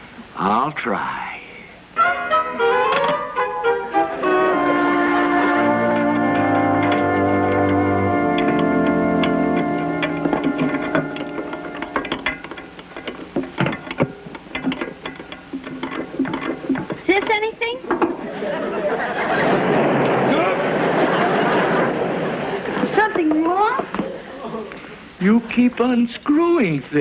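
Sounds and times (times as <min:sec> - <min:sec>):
sustained music chords: 0:02.0 - 0:12.8
scattered knocks and clicks: 0:05.6 - 0:18.3.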